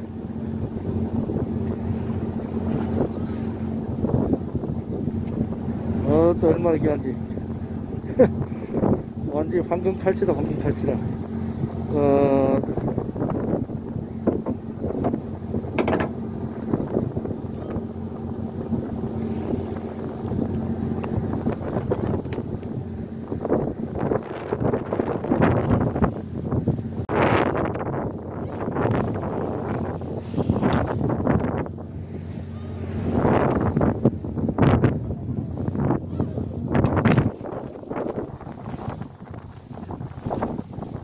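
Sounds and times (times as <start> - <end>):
boat motor humming: 0.0 - 41.0
water rushing along hull: 0.0 - 41.0
wind on microphone: 0.0 - 41.0.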